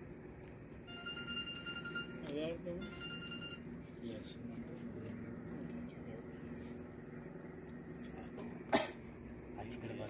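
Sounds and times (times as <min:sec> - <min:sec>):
low background hum: 0:00.0 - 0:10.0
person coughing: 0:08.7 - 0:09.1.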